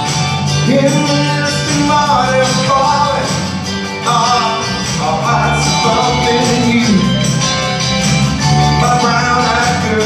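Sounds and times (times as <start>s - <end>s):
retro backing music: 0.0s - 10.0s
man singing into a microphone: 0.5s - 7.5s, 8.7s - 10.0s.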